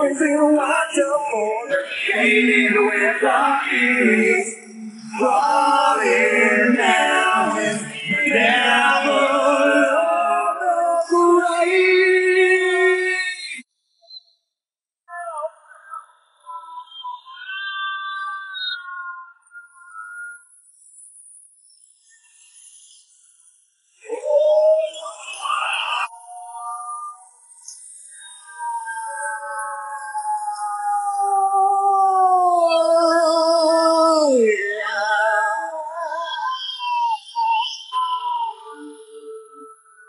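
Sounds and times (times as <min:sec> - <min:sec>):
whistle-like warbling tones: 0:15.7 - 0:20.5, 0:24.1 - 0:40.0.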